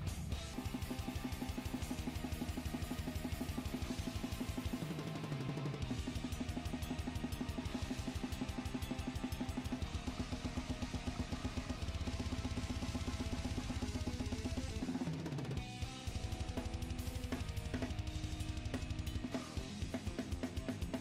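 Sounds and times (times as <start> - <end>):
fast bass drum strokes: 0.0 - 21.0
heavy metal backing track: 0.0 - 21.0
snare and cymbals: 0.0 - 21.0.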